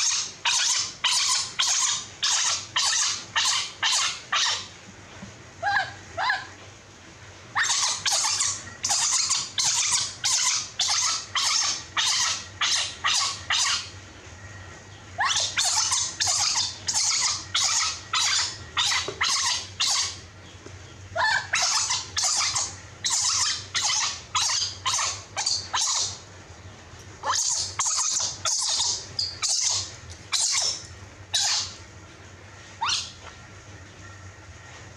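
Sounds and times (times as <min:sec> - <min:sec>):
infant monkey crying: 0:00.0 - 0:04.7, 0:05.6 - 0:06.6, 0:07.6 - 0:13.9, 0:15.2 - 0:20.3, 0:21.1 - 0:26.2, 0:27.2 - 0:31.8, 0:32.8 - 0:33.2.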